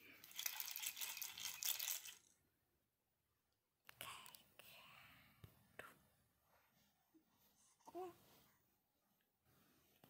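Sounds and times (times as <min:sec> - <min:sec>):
baby rattle shaken: 0:00.2 - 0:02.4.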